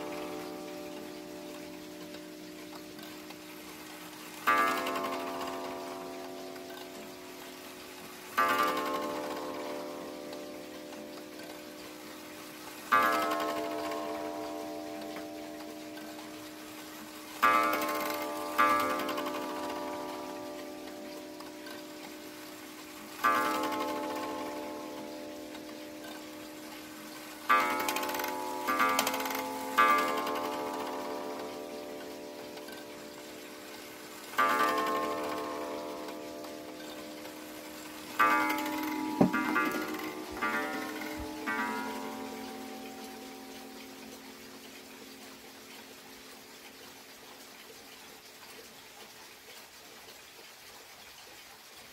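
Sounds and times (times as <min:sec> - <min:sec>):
clock hammer striking coiled gong: 0:38.2 - 0:43.2.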